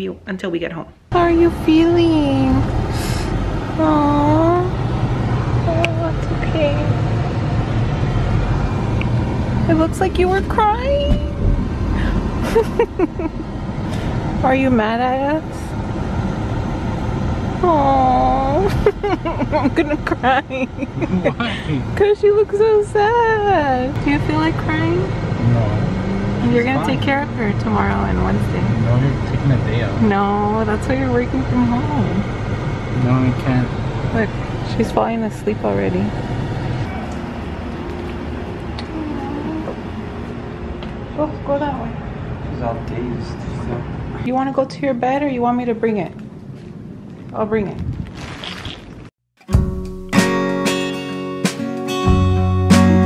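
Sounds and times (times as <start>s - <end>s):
car cabin rumble: 1.2s - 38.0s.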